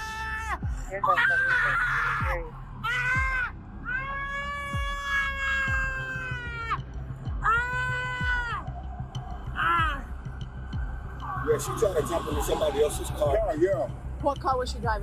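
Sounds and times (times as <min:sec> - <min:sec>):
woman screaming: 0:00.0 - 0:06.8, 0:07.4 - 0:08.6.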